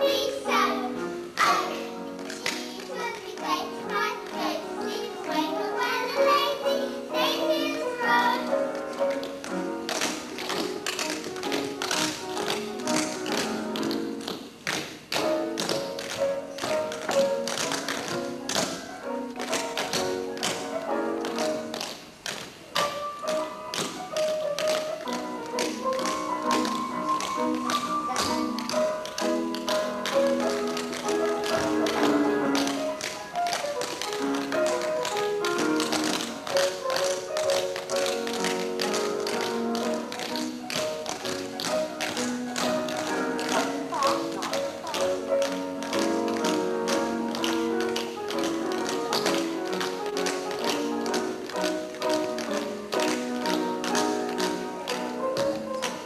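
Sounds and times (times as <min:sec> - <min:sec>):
tap shoes striking stage floor: 0:00.0 - 0:56.0
melodic music: 0:22.8 - 0:56.0.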